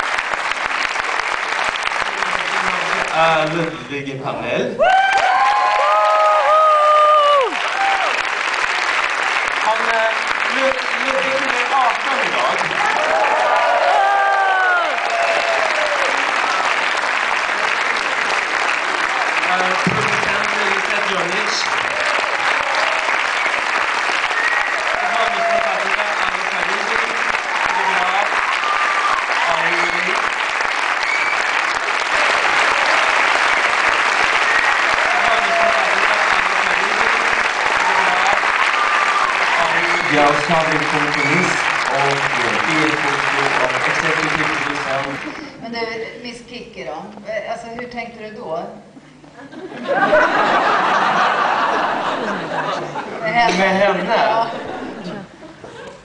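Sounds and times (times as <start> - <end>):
audience applauding: 0.0 - 3.8, 4.8 - 45.6, 49.8 - 56.0.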